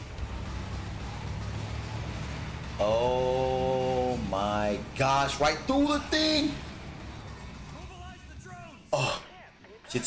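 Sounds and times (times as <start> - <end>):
truck and cars driving: 0.0 - 9.8.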